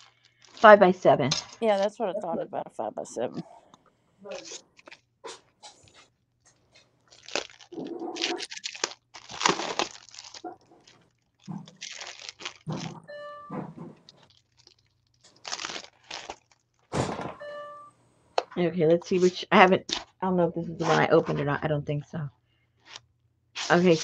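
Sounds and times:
plastic packaging crinkling: 0:00.0 - 0:02.0, 0:04.3 - 0:13.1, 0:14.0 - 0:17.0, 0:22.8 - 0:23.0, 0:23.6 - 0:24.0
electronic chime: 0:13.0 - 0:13.6, 0:17.4 - 0:18.0.

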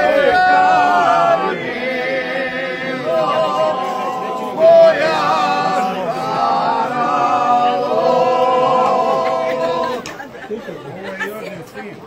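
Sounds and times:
men singing unaccompanied: 0:00.0 - 0:10.1
people talking: 0:00.0 - 0:12.0.

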